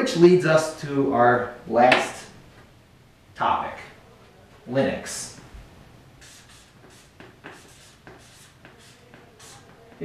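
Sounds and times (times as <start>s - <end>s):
marker writing on paper: 6.2s - 10.0s.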